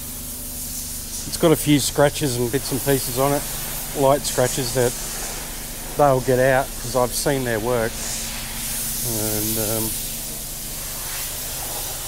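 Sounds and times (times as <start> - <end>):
low even hum: 0.0 - 12.0
steady hiss: 0.0 - 12.0.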